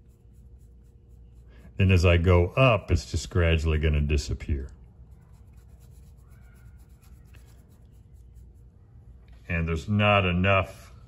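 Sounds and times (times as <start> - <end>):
paintbrush scratching on canvas: 0.0 - 2.8, 5.0 - 8.9
low room hum: 0.0 - 11.0.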